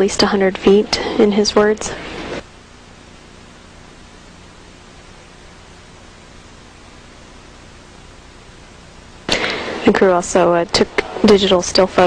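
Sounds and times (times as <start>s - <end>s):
spoken transmissions: 0.0s - 2.4s, 9.3s - 12.0s
broadcast line hiss: 0.0s - 12.0s.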